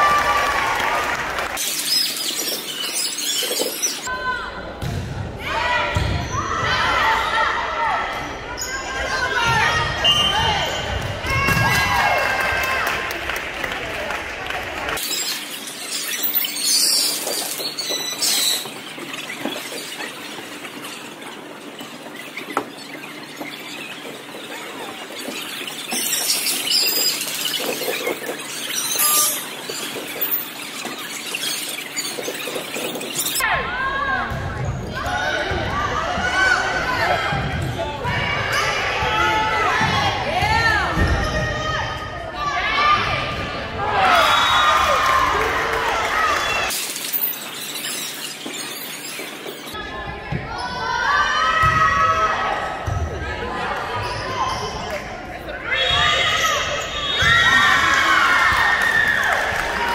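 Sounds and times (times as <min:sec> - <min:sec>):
sneakers squeaking on gym floor: 0:01.6 - 0:04.1, 0:15.0 - 0:33.5, 0:46.7 - 0:50.9, 0:52.8 - 0:58.1
voices in a hall: 0:32.1 - 0:59.9.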